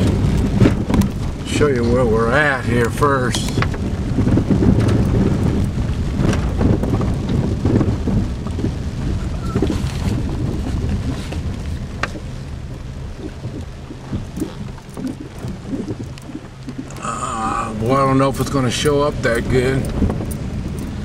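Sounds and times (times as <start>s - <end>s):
low rumble of car driving: 0.0s - 21.0s
rain pattering on a car: 0.0s - 21.0s.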